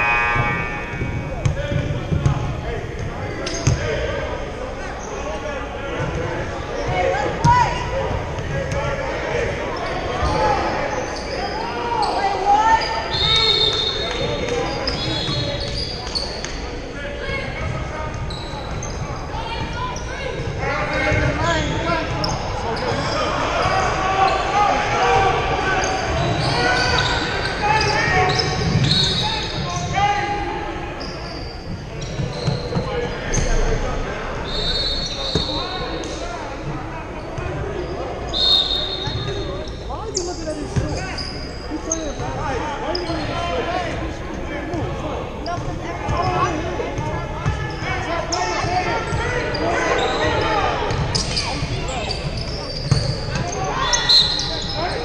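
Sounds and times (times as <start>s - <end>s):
sneakers squeaking: 0.0s - 4.2s, 4.9s - 33.8s, 34.4s - 55.0s.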